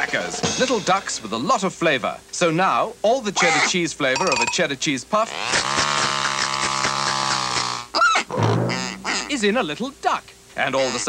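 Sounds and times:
cartoon duck quacking: 0:05.3 - 0:09.3, 0:10.8 - 0:11.0.

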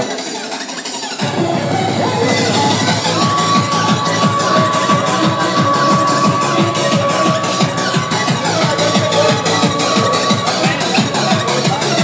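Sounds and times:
fast electronic dance music: 0:00.0 - 0:12.0.

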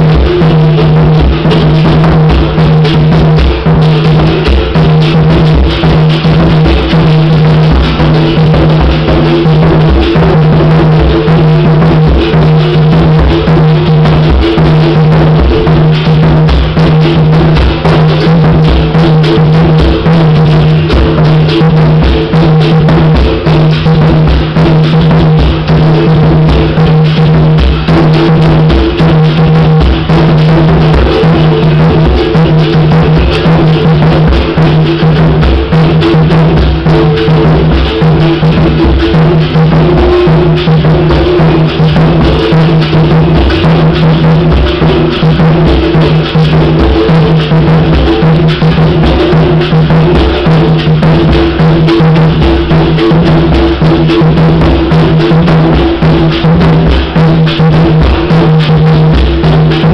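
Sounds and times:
hand drum: 0:00.0 - 0:59.9.

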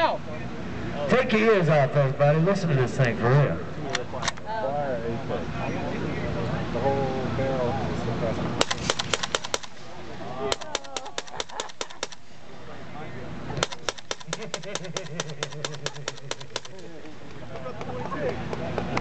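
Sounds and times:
suppressed rifle automatic bursts: 0:08.6 - 0:09.9, 0:10.5 - 0:12.3, 0:13.6 - 0:16.9.

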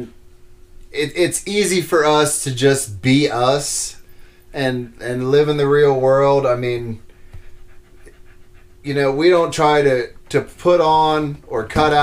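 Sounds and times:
dog panting softly: 0:06.9 - 0:09.5.

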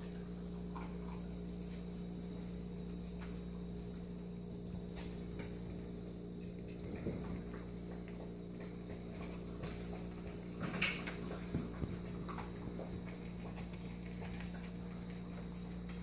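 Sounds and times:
puppies crunching kibble: 0:00.0 - 0:16.0
steady low hum: 0:00.0 - 0:16.0.

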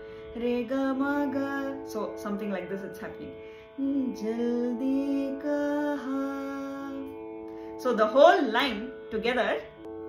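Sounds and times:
shruti box drone: 0:00.0 - 0:10.0.

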